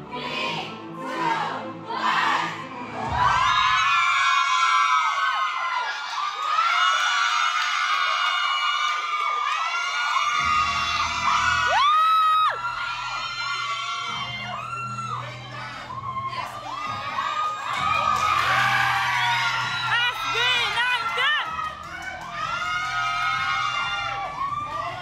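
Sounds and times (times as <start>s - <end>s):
crowd screaming and cheering: 0.0s - 25.0s
music: 0.0s - 25.0s.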